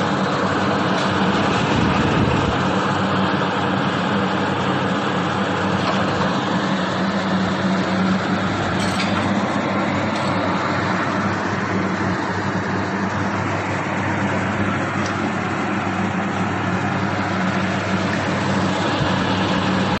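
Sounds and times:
fan-like noise: 0:00.0 - 0:20.0
packaging machinery hum: 0:00.0 - 0:20.0.

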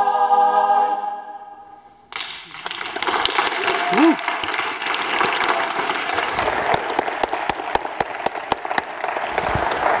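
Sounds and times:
audience applauding: 0:02.1 - 0:10.0
close hands clapping: 0:02.1 - 0:10.0.

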